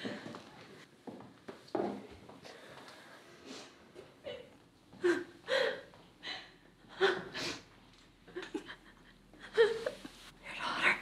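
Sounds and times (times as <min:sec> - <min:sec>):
woman gasping and sobbing: 0:05.0 - 0:07.7.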